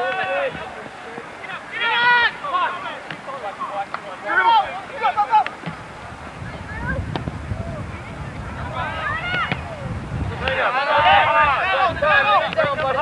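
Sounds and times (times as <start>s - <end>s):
distant shouts: 0.0s - 13.0s.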